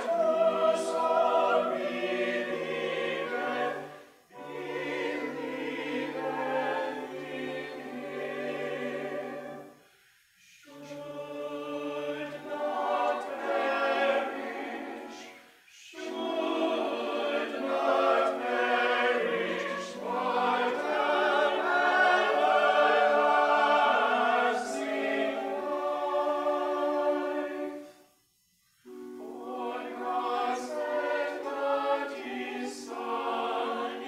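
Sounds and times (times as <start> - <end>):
church choir singing in parts: 0.0 - 28.2, 28.8 - 34.0.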